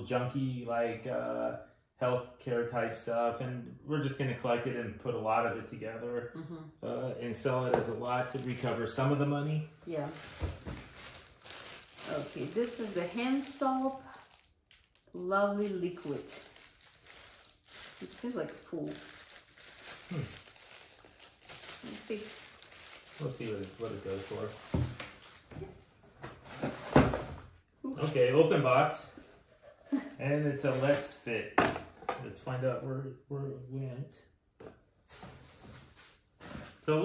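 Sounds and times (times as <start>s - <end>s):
man speaking: 0.0s - 9.7s, 23.2s - 24.7s, 28.0s - 29.2s, 30.2s - 31.6s, 32.2s - 34.2s
person humming hmm: 6.4s - 7.0s, 20.1s - 20.3s
plastic wrapping crinkling: 8.0s - 9.1s, 9.9s - 25.9s
packaging rustling: 10.0s - 25.9s.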